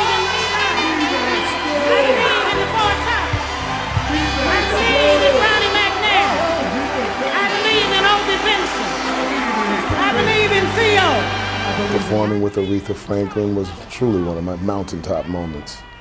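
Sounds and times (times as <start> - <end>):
live soul band playing: 0.0 - 12.2.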